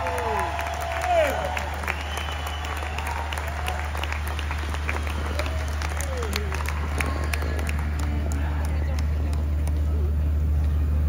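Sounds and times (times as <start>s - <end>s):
people clapping: 0.0s - 10.2s
low rumble of stage sound: 0.0s - 11.0s.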